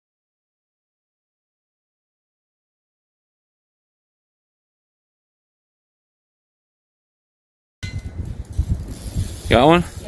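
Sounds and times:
wind buffeting microphone: 7.8s - 10.0s.

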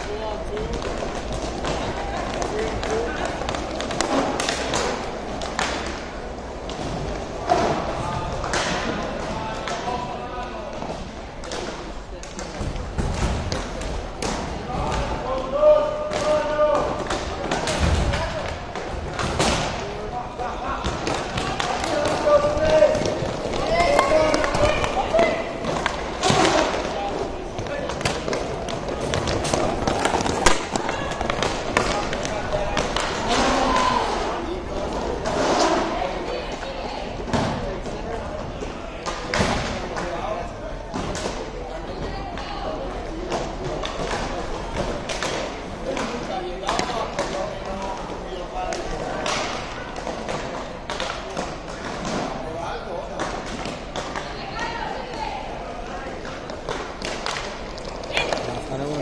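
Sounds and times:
hockey sticks clacking on puck: 0.0s - 7.8s, 20.8s - 36.7s, 42.3s - 52.4s, 53.1s - 54.4s, 56.1s - 59.0s.

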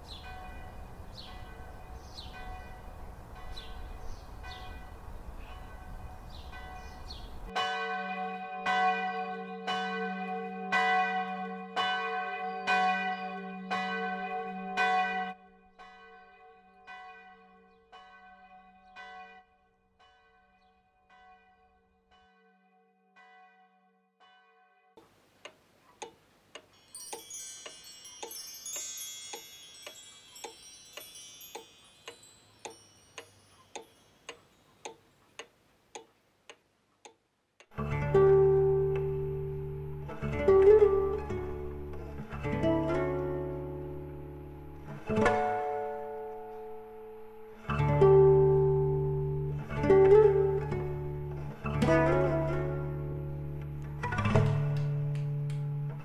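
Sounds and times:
church bell ringing: 0.0s - 24.6s, 26.8s - 34.2s
steady ticking: 25.0s - 37.8s
faint high jingling: 26.6s - 35.4s.

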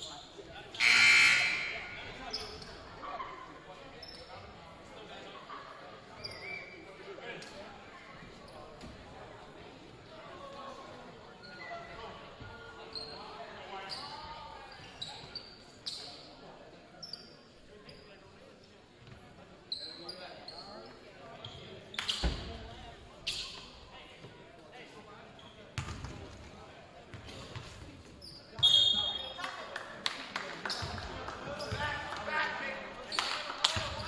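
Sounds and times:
sneaker squeaks: 0.0s - 3.4s, 4.0s - 4.6s, 6.2s - 6.9s, 11.3s - 12.0s, 12.9s - 16.3s, 17.0s - 18.1s, 19.6s - 22.6s, 23.2s - 23.8s, 25.3s - 26.2s, 27.1s - 29.4s, 30.7s - 31.0s
voices echoing in gym: 0.0s - 34.0s.

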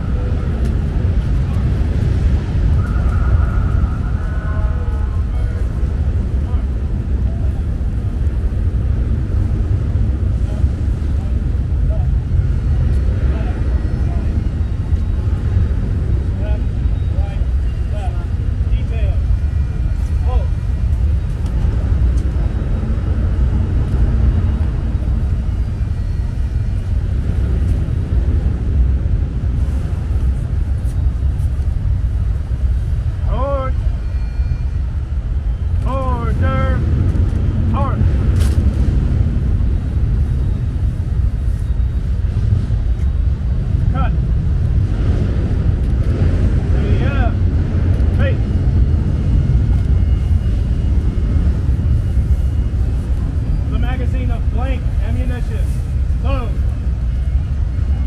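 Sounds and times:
low city rumble: 0.0s - 58.0s
distant voice-like calls: 2.6s - 6.7s.

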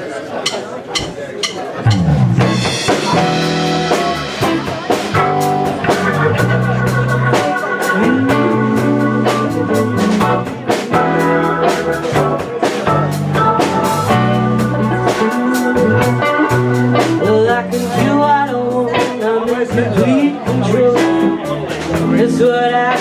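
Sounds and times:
blues band playing: 0.3s - 23.0s.

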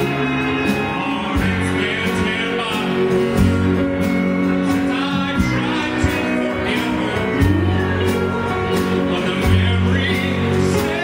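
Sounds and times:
guitar: 0.0s - 11.0s
wavering lead melody: 0.0s - 11.0s.

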